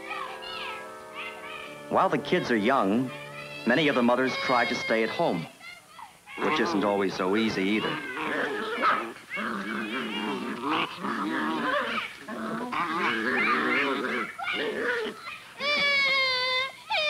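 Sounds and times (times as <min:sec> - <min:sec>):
high-pitched wail: 0:00.0 - 0:05.5
children shouting and squealing: 0:00.0 - 0:17.0.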